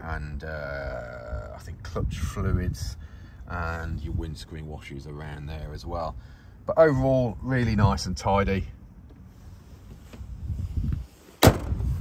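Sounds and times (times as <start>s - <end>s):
wind buffeting microphone: 1.3s - 4.5s, 10.2s - 12.0s.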